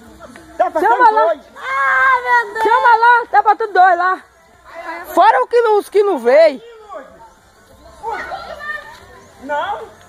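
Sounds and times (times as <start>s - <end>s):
close talk: 0.0s - 10.0s.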